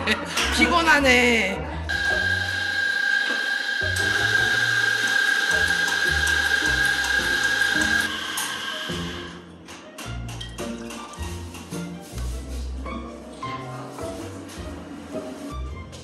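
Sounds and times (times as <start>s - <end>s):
background music: 0.0s - 3.0s, 3.8s - 16.0s
coffee grinder motor whine: 1.9s - 9.4s.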